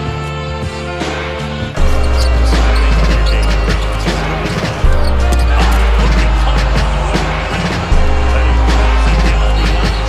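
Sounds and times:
hip-hop beat: 1.8 - 10.0.

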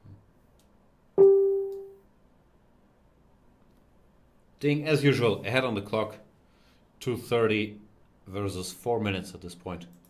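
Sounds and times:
single struck musical note: 1.2 - 2.0.

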